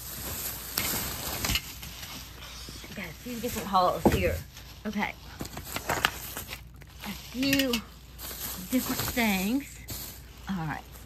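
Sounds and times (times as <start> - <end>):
household items rustling and clattering: 0.0 - 11.0.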